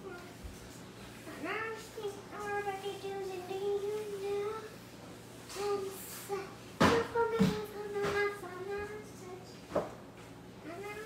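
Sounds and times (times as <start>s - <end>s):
girl singing wordless tune: 0.0s - 4.9s, 5.5s - 9.8s, 10.6s - 11.0s.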